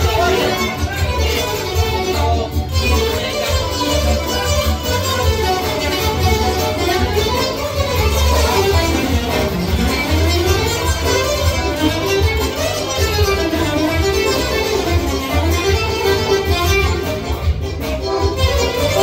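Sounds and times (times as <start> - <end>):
nylon-string guitar plucked melody: 0.0 - 19.0.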